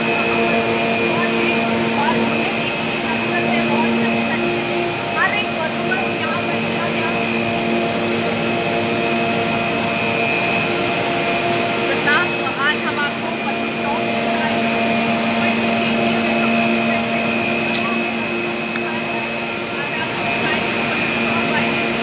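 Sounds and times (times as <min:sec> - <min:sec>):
cable car machinery whine: 0:00.0 - 0:22.0.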